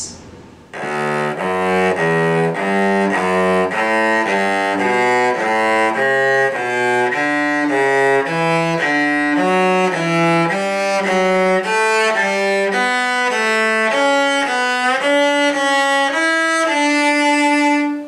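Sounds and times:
cello bowing a scale: 0.0 - 18.0.

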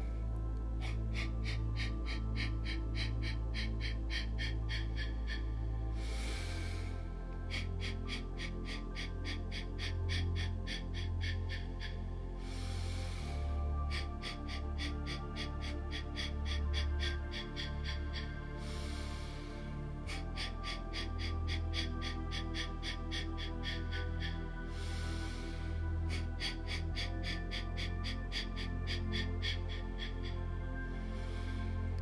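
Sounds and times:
calm meditation music: 0.0 - 32.0
person inhaling: 12.4 - 13.5
rapid sharp nasal exhales: 12.4 - 14.1.

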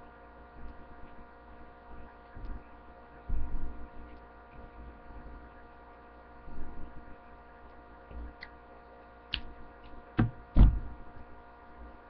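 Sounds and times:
electrical hum: 0.0 - 12.0
dull low thumps: 10.2 - 11.0.

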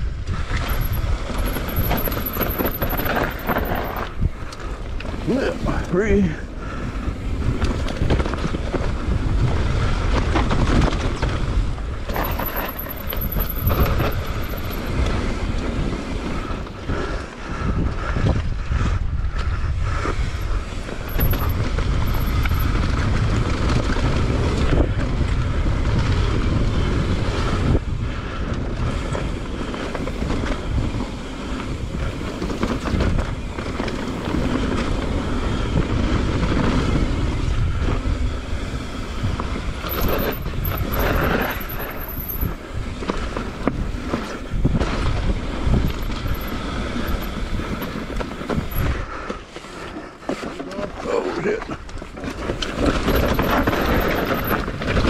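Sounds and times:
wind rushing over microphone: 0.0 - 49.5, 51.8 - 55.0
bike rattling over rough ground: 0.0 - 51.0, 51.6 - 55.0.

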